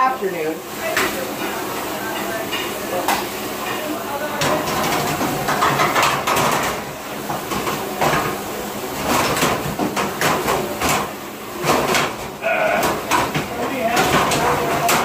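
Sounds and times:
noisy background: 0:00.0 - 0:15.0
metal and dishes clattering: 0:00.9 - 0:08.4, 0:09.0 - 0:15.0.

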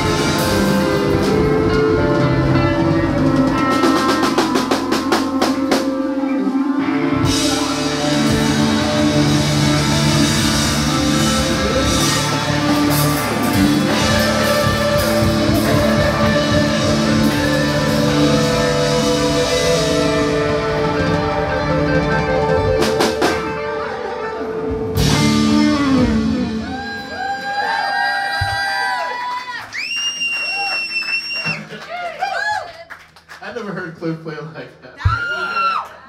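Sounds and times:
live band jamming: 0:00.0 - 0:29.0.

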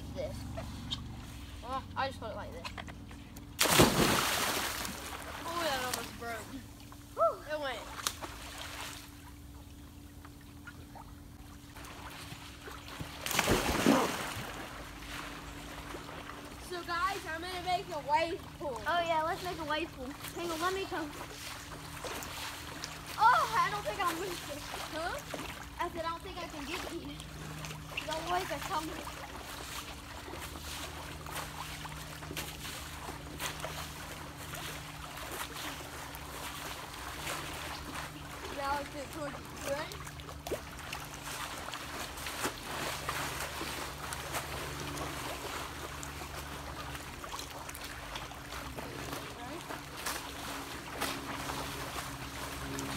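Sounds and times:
faint water sounds: 0:00.0 - 0:52.9
steady low hum: 0:00.0 - 0:52.9
splash into swimming pool: 0:03.6 - 0:05.9, 0:11.8 - 0:16.2.

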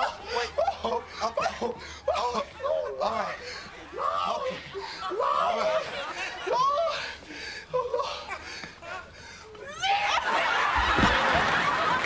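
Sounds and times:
studio audience laughing: 0:10.2 - 0:12.0.

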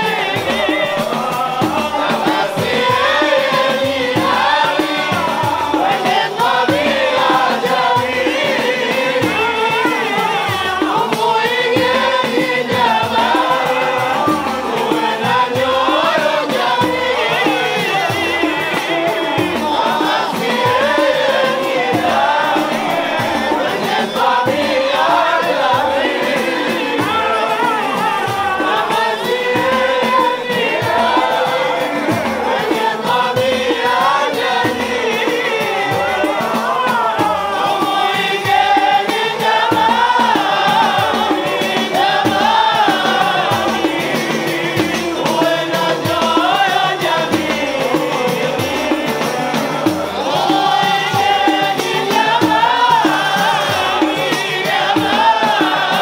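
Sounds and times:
men chanting in unison: 0:00.0 - 0:56.0
steady low drum beat: 0:00.0 - 0:56.0.

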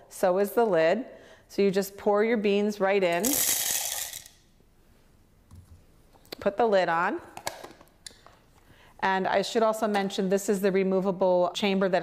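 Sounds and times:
coffee beans pouring rattle: 0:03.1 - 0:04.4.

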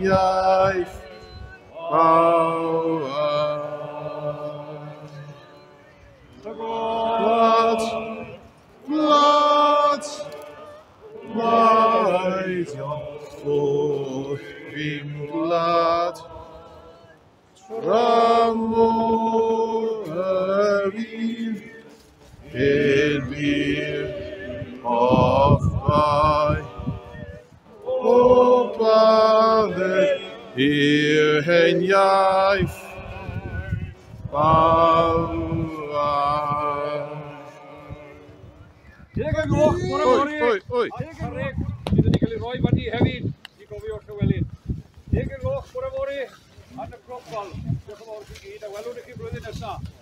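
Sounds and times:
person singing outdoors: 0:00.0 - 0:40.6.

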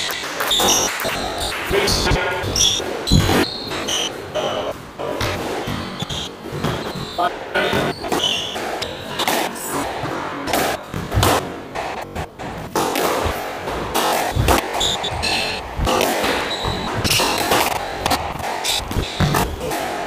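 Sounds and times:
shoes squeaking on wooden floor: 0:00.0 - 0:19.8
squash ball cracking off rackets: 0:02.5 - 0:20.0.

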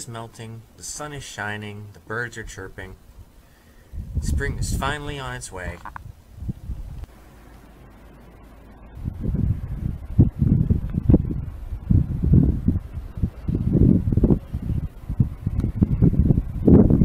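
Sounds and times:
strong wind gusting on microphone: 0:03.1 - 0:07.1, 0:09.0 - 0:17.0.

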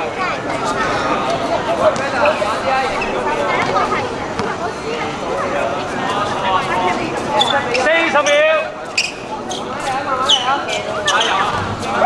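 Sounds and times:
players calling out: 0:00.4 - 0:12.0.

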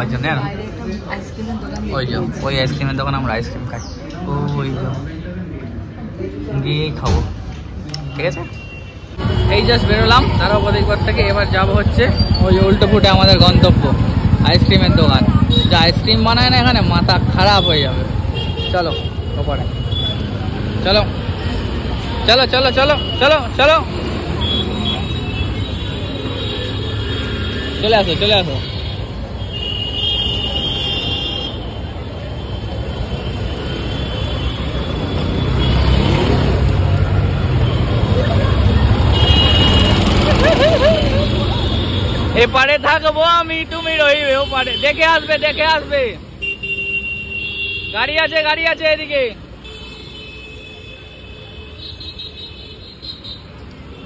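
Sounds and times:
voices: 0:00.0 - 0:29.5, 0:30.4 - 0:46.6
small engines rumbling in traffic: 0:00.0 - 0:54.0.

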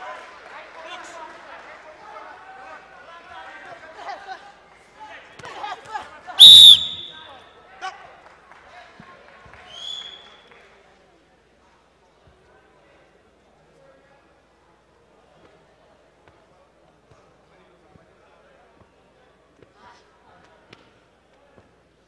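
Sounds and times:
crowd voices and shouting: 0:02.2 - 0:07.5
short high tone: 0:06.4 - 0:07.3.

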